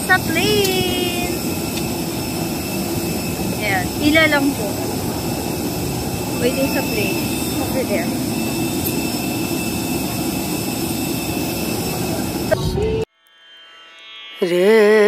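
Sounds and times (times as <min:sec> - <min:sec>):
high steady whine: 0:00.0 - 0:13.1
jet engines roaring: 0:00.0 - 0:13.1.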